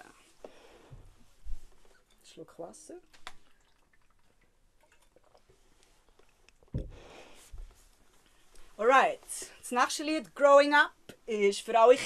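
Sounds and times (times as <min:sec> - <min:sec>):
person sipping water: 0:03.2 - 0:08.8
dull thump: 0:06.7 - 0:07.7.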